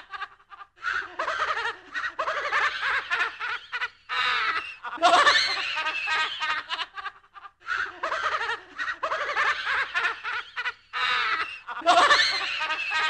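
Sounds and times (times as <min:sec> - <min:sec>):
person laughing spookily: 0:00.0 - 0:13.0.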